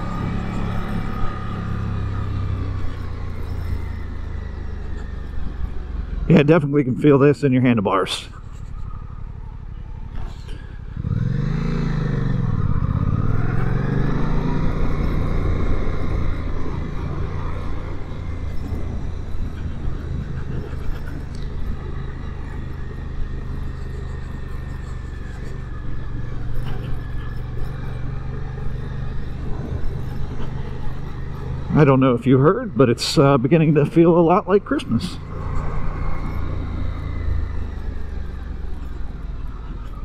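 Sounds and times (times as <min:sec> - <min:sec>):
motorcycle engine revving: 0:00.0 - 0:40.0.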